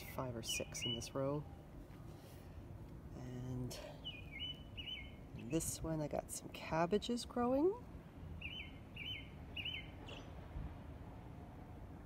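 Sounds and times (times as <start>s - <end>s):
low outdoor background noise: 0.0s - 12.0s
small bird chirping: 4.0s - 5.6s, 8.4s - 10.4s.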